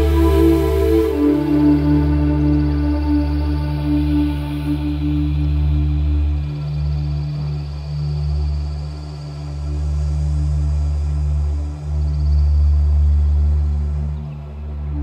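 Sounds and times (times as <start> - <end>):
synthesizer sustained chords: 0.0 - 15.0.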